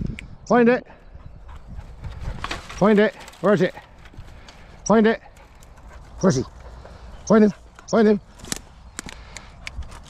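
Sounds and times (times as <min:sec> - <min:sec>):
dry twigs snapping: 0:02.3 - 0:05.9, 0:07.7 - 0:10.0.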